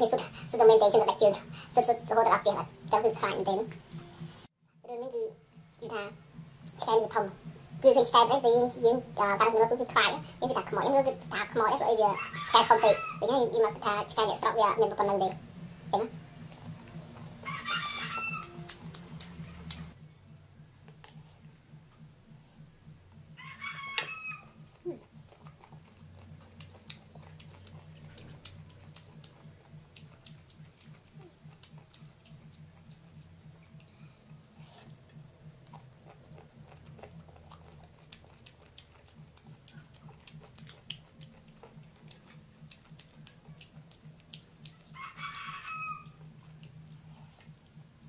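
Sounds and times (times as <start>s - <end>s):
low pulsing hum: 0.0s - 48.0s
rooster crowing: 12.0s - 13.2s, 17.3s - 18.7s, 23.3s - 24.7s, 44.9s - 46.3s
sharp clicks of eating crisp mango: 18.3s - 20.0s, 24.0s - 48.0s.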